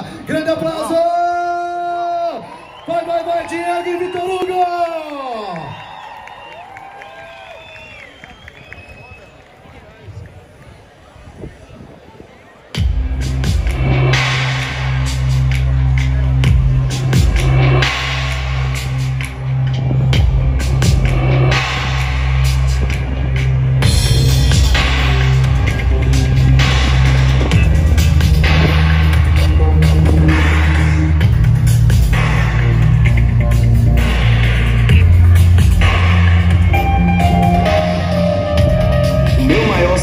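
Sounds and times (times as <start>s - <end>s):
crowd cheering: 0.4s - 13.0s, 14.1s - 33.3s
deep bass line: 12.8s - 40.0s
drum kit: 12.8s - 40.0s
loud live band music: 12.8s - 40.0s.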